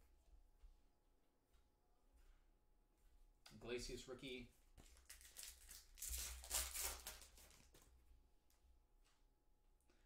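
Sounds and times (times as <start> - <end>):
cards rustling: 4.8 - 7.9
foil wrapper crinkling: 4.8 - 7.9.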